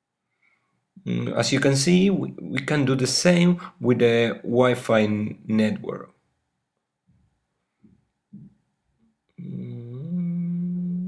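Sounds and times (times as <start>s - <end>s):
man humming low note: 9.4s - 11.0s.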